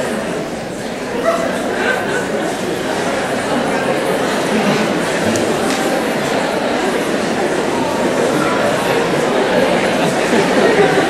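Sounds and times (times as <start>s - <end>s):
audience chattering: 0.0s - 11.0s.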